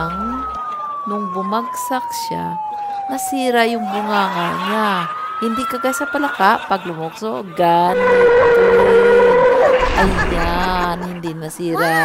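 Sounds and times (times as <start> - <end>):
tyres squealing: 7.9 - 11.4.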